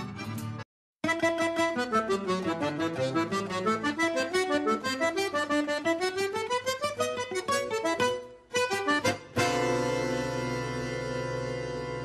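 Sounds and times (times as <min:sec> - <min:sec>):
accordion music: 0:00.0 - 0:12.0.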